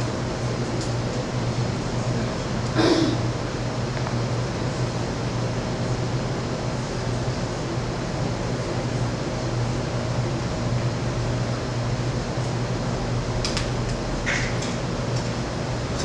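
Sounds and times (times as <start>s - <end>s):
low mechanical hum and hiss: 0.0s - 16.0s.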